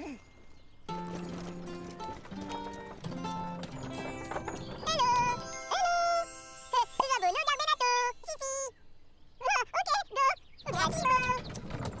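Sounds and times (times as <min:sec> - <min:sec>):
light cartoon music: 0:00.9 - 0:08.7
tinkling chime: 0:03.6 - 0:08.7.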